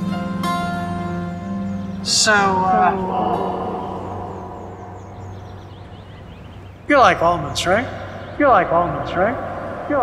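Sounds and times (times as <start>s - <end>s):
distant traffic rumble: 0.0s - 10.0s
bird chirps: 0.6s - 10.0s.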